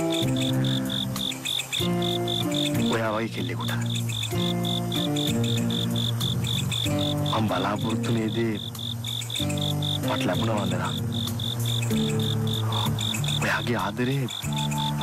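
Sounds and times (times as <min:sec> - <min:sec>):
cricket chirping: 0:00.0 - 0:15.0
music of long held chords: 0:00.0 - 0:15.0.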